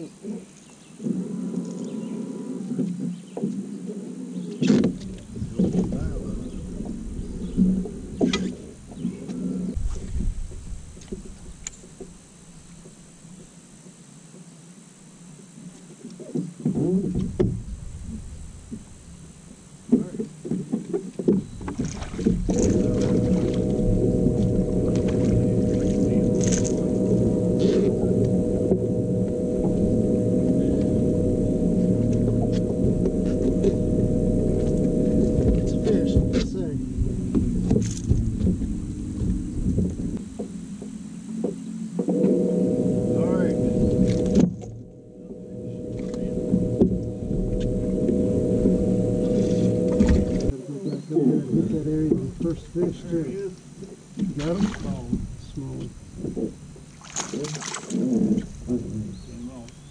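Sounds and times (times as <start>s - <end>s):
electric trolling motor humming: 4.7s - 13.6s, 16.8s - 50.5s
low rumble: 5.0s - 13.4s, 16.8s - 20.4s, 21.4s - 50.5s.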